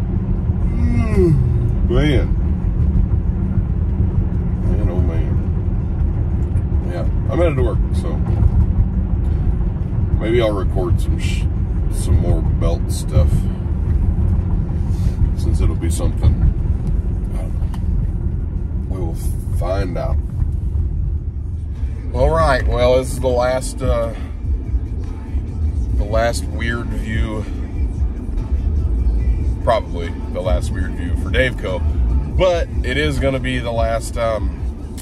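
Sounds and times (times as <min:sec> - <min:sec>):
road and engine rumble: 0:00.0 - 0:35.0.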